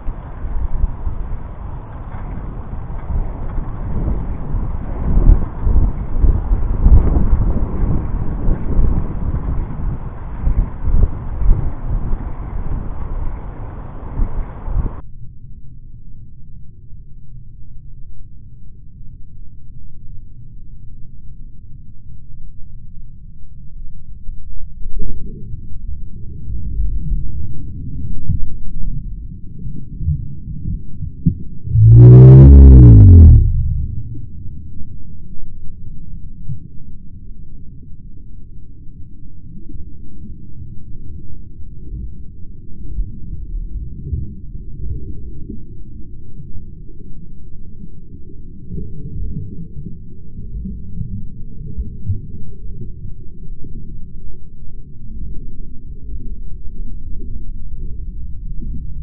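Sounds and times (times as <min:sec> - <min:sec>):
deep muffled rumble: 0:00.0 - 0:15.0, 0:25.7 - 0:35.9
low thumps: 0:31.7 - 0:34.5.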